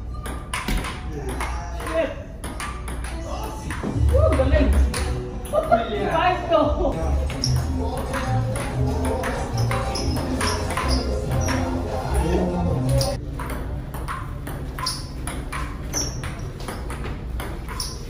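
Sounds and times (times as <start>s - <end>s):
background music: 0.0s - 13.9s
ping-pong ball clicking: 0.1s - 5.8s, 12.9s - 18.0s
voices: 3.0s - 13.2s.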